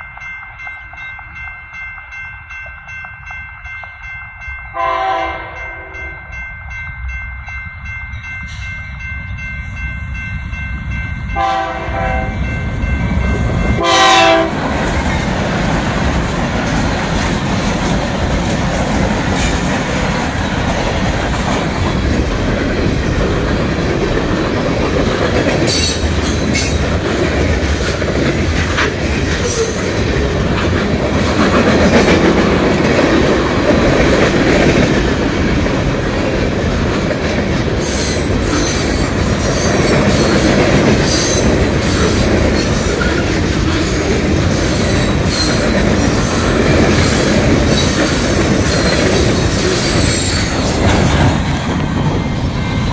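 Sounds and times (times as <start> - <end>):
freight train wheels rumbling: 0.0 - 52.9.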